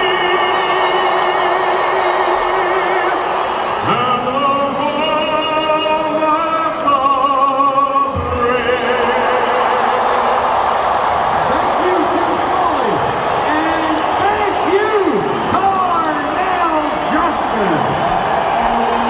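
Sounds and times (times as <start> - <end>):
people whooping and shouting: 0.0 - 5.2, 8.1 - 19.0
crowd cheering: 0.0 - 19.0.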